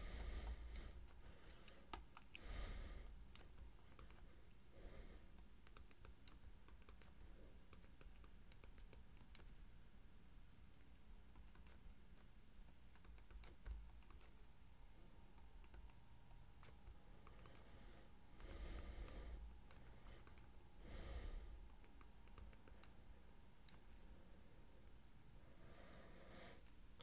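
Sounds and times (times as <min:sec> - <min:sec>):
stylus clicks on tablet: 0:05.4 - 0:09.5.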